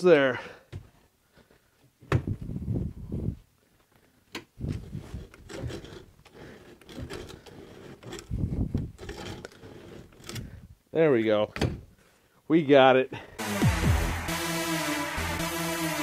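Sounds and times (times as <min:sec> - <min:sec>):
drill bit grinding wood: 0:04.9 - 0:10.5.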